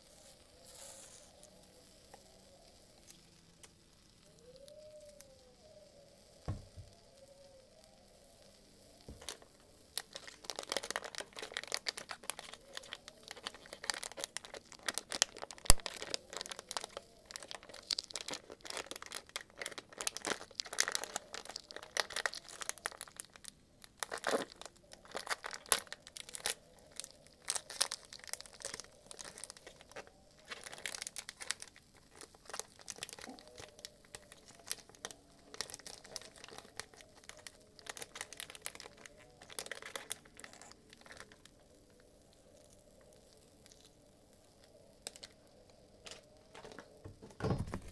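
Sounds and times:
plastic wrapper crinkling and tearing: 0:00.0 - 0:47.9.

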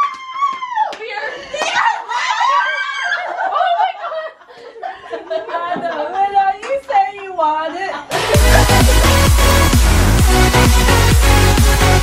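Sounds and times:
women laughing loudly: 0:01.6 - 0:06.4, 0:07.8 - 0:09.7.

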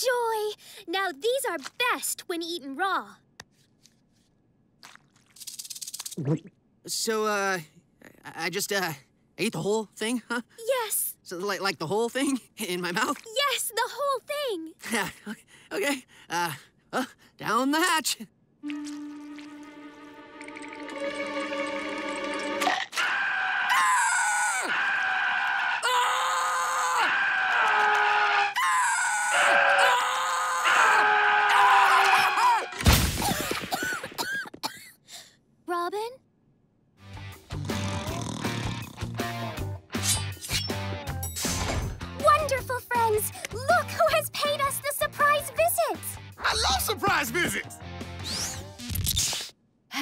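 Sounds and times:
cartoon creature screaming: 0:22.8 - 0:32.8.

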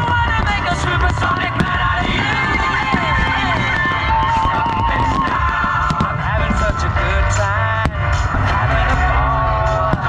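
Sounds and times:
fireworks rumbling and crackling: 0:00.0 - 0:10.0
music over loudspeakers: 0:00.0 - 0:10.0.

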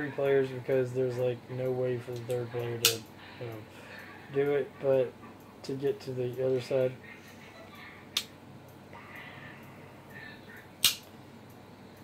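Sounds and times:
quiet room noise: 0:00.0 - 0:12.0
sharp clicks: 0:10.8 - 0:11.6.

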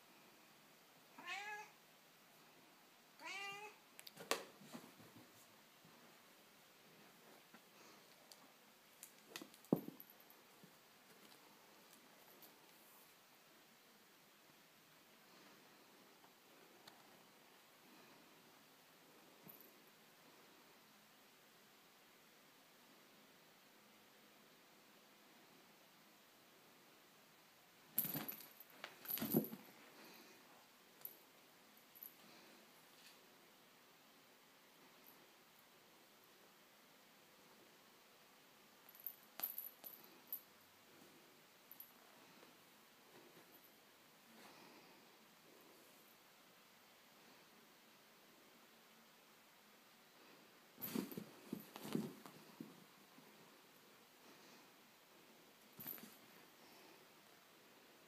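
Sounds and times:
cat meowing: 0:01.2 - 0:01.8, 0:03.2 - 0:03.8.

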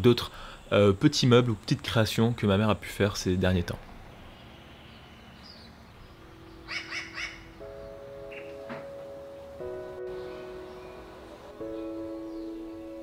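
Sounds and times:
soft music with held notes: 0:06.0 - 0:13.0.

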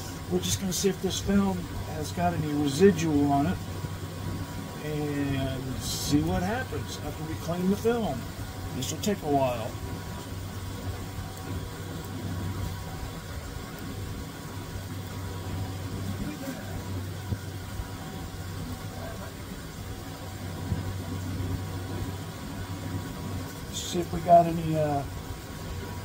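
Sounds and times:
film scanner mechanical hum: 0:00.0 - 0:26.0.

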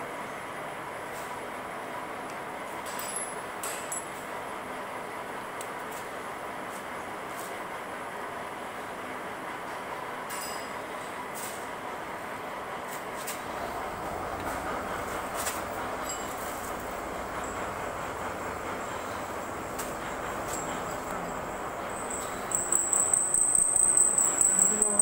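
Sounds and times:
drilling machine humming: 0:13.4 - 0:25.0.

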